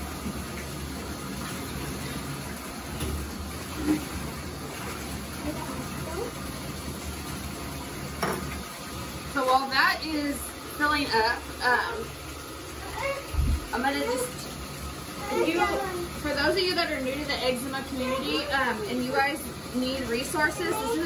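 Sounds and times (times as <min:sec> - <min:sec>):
tap water running into tub: 0:00.0 - 0:21.0.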